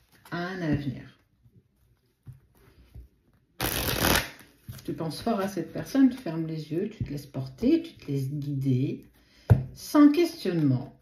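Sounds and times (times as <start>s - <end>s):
cards being riffle-shuffled: 3.6s - 6.2s.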